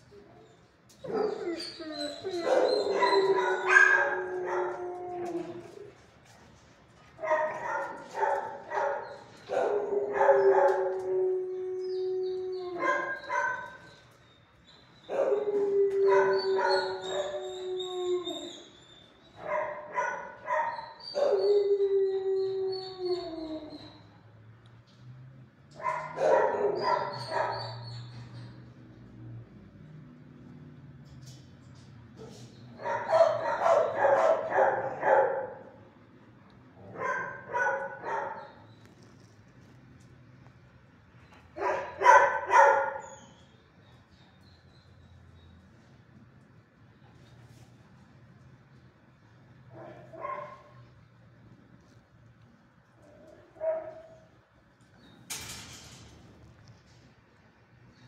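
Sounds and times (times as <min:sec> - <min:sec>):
dog barking and howling: 0:01.0 - 0:05.8, 0:07.2 - 0:13.9, 0:15.0 - 0:18.6, 0:19.4 - 0:24.0, 0:25.8 - 0:28.0, 0:32.8 - 0:35.8, 0:36.8 - 0:38.6, 0:41.6 - 0:43.3, 0:49.7 - 0:50.9.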